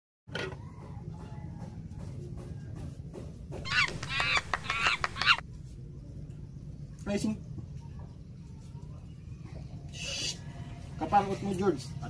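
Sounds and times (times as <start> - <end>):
monkey high-pitched calls: 3.6 - 5.4.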